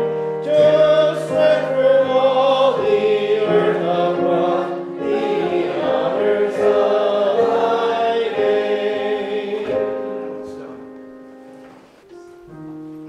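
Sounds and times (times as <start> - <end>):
congregation singing a hymn: 0.0 - 11.9.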